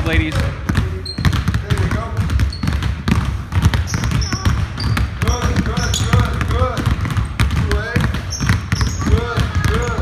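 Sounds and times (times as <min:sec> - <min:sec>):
basketballs bouncing on hardwood floor: 0:00.0 - 0:10.0.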